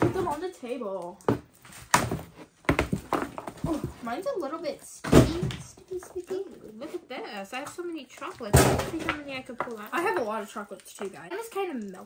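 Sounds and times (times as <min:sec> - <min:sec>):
plastic tub knocking on table: 0:01.3 - 0:04.1.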